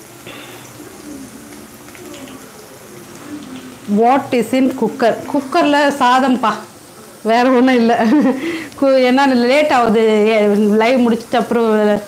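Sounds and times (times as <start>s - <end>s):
oil sizzling: 0.0s - 12.0s.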